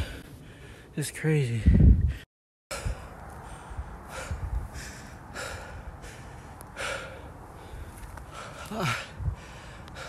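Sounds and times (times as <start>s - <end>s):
person breathing hard: 0.0s - 0.9s, 1.7s - 10.0s
rumble of walking: 2.8s - 10.0s.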